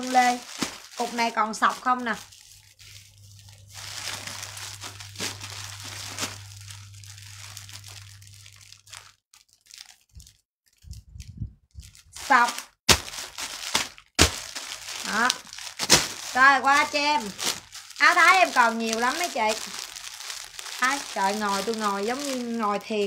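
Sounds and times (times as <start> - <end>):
plastic bags crinkling: 0.0 - 11.2, 11.8 - 23.0.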